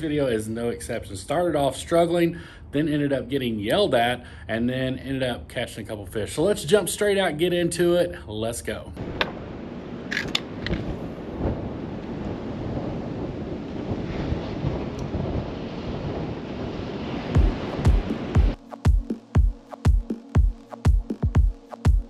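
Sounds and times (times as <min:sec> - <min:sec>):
wind: 0:00.0 - 0:17.8
electronic dance music: 0:17.4 - 0:22.0.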